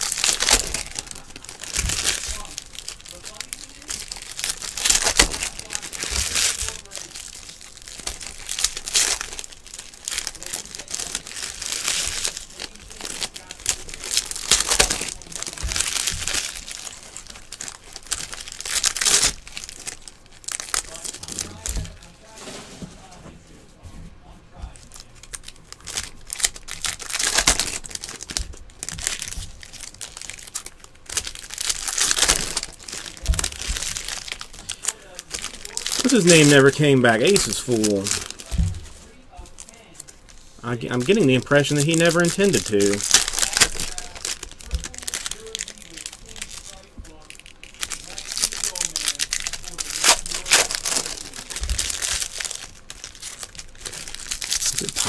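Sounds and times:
cards rustling: 0.0s - 22.7s, 24.7s - 55.0s
foil wrappers crinkling and tearing: 0.0s - 22.8s, 24.6s - 55.0s.

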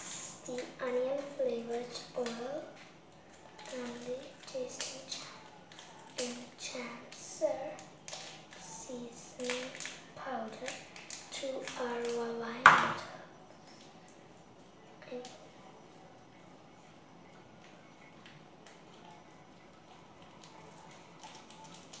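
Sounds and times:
child's voice: 0.0s - 2.7s, 3.6s - 5.5s, 6.2s - 7.9s, 8.6s - 13.2s, 15.0s - 15.4s
scissors cutting plastic sachet: 3.5s - 6.5s, 7.8s - 8.8s, 9.4s - 12.2s, 20.3s - 22.0s.

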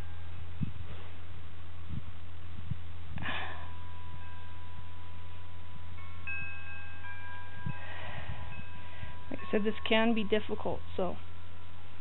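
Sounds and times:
wind chimes ringing: 0.0s - 1.5s, 3.2s - 12.0s
steady low rumble: 0.0s - 12.0s.

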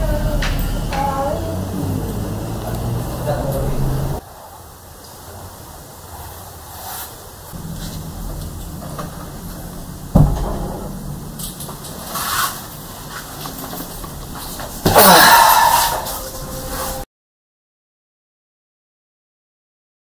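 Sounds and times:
low steady drone: 0.0s - 6.1s, 7.5s - 17.0s
rustling: 4.4s - 17.0s
loud thump: 7.6s - 12.2s.

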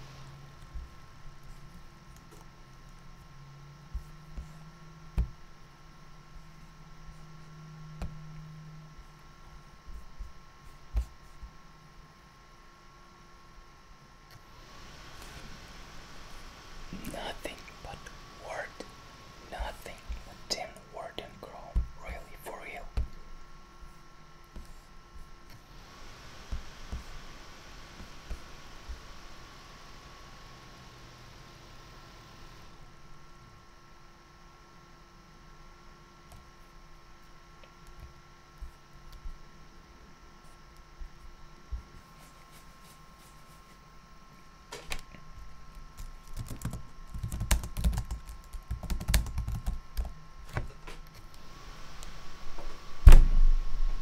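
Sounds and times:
laptop fans rushing air: 0.0s - 34.0s, 36.2s - 54.0s.

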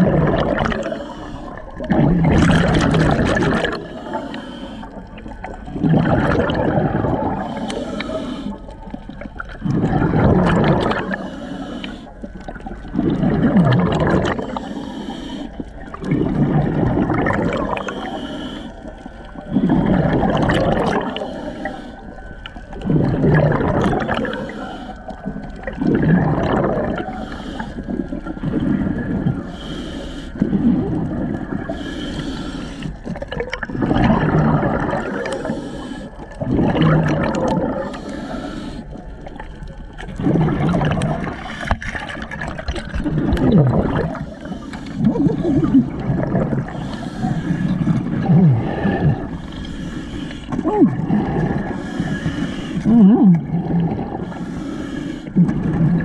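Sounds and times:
underwater exhaled bubbles gurgling: 0.0s - 56.0s.

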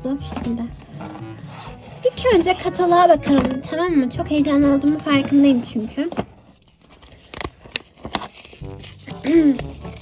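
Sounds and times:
paper rustling and clicks: 4.6s - 10.0s.

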